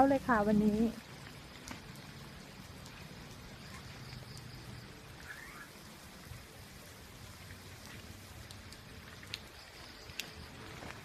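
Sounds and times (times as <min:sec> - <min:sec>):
rain hissing: 0:00.0 - 0:11.0
single raindrops ticking: 0:00.0 - 0:11.0.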